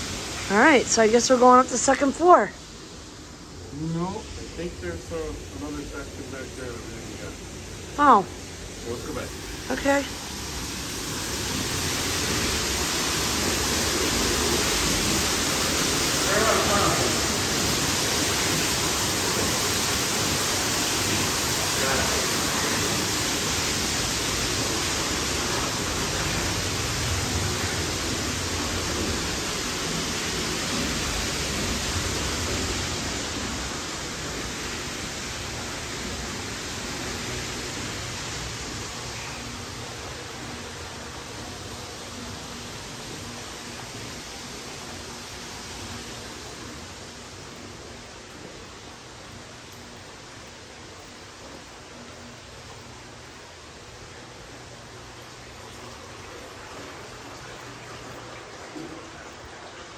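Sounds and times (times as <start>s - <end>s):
steady rushing noise: 0.0s - 49.6s.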